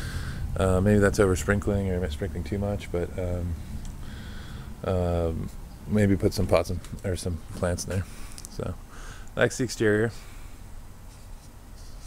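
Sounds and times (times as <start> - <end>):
low steady hum: 0.0 - 12.0
person speaking: 0.6 - 3.7, 4.8 - 10.3.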